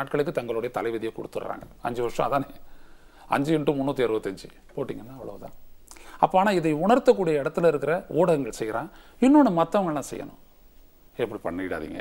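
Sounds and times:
man speaking: 0.0s - 2.7s, 3.3s - 10.4s, 11.1s - 12.0s.

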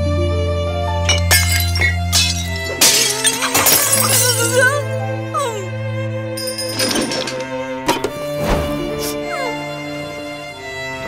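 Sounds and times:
cartoon background music: 0.0s - 11.0s
loud shattering crash: 1.1s - 4.5s.

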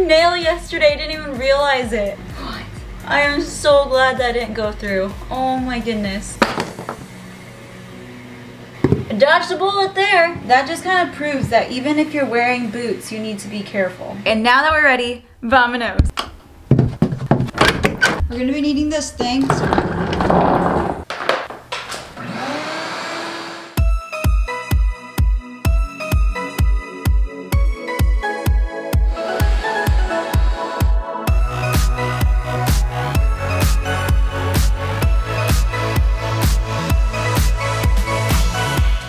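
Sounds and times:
shop vacuum motor running: 22.2s - 23.8s
electronic music with heavy kick: 23.8s - 39.0s.

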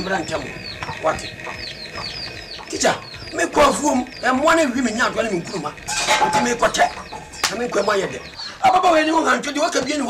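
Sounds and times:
small birds chirping: 0.0s - 10.0s
man speaking: 2.7s - 10.0s.

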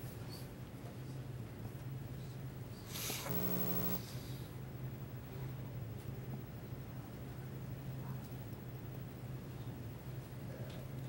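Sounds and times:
steady low hum: 0.6s - 11.0s
faint hiss: 2.8s - 4.5s.

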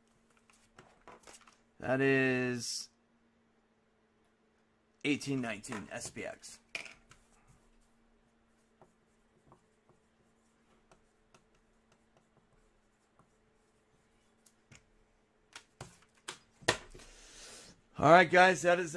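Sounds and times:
faint steady hum: 0.0s - 18.9s.

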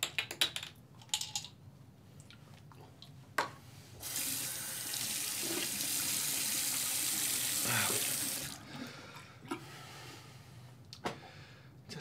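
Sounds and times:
water running from tap into sink: 4.0s - 8.6s.

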